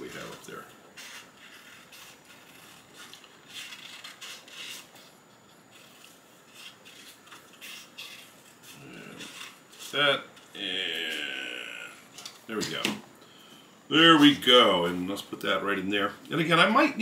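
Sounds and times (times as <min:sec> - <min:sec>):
paper rustling: 0:00.0 - 0:10.5
scissors snipping paper: 0:01.1 - 0:05.0.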